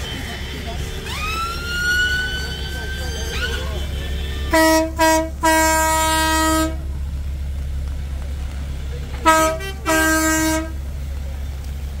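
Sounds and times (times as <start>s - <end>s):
low steady rumble: 0.0s - 12.0s
vehicle horn blast: 3.3s - 6.9s, 9.2s - 10.8s.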